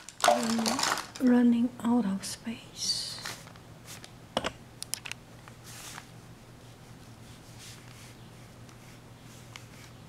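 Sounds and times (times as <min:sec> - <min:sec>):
paper rustling: 0:00.0 - 0:01.3.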